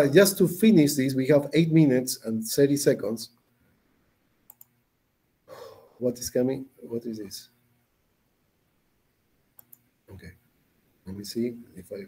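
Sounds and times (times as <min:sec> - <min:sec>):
computer mouse clicks: 0:04.4 - 0:04.8, 0:09.6 - 0:09.9.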